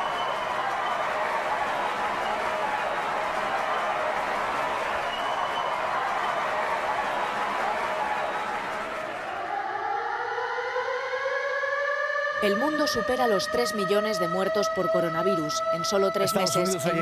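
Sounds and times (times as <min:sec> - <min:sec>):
siren wailing upward: 0:09.1 - 0:17.0.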